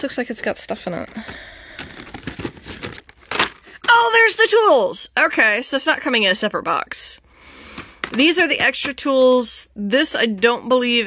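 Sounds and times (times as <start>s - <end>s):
cardboard rustling and scraping: 0.5s - 3.6s.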